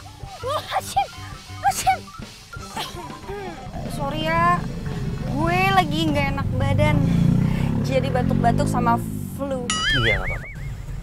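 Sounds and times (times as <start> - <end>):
background music notes: 0.0 - 11.0
low hum: 2.6 - 8.3.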